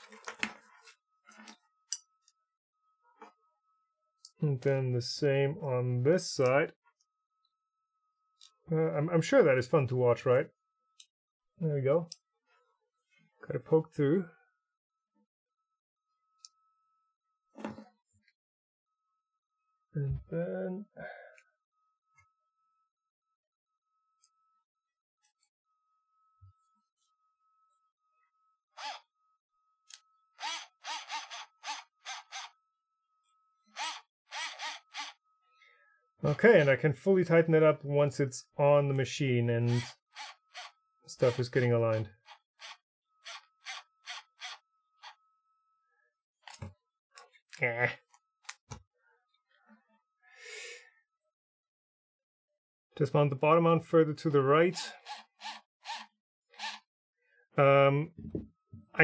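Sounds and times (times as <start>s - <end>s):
cordless screwdriver whirring: 28.8s - 29.0s, 30.4s - 32.5s, 33.8s - 35.2s, 39.7s - 40.7s, 42.3s - 45.2s, 55.0s - 56.8s.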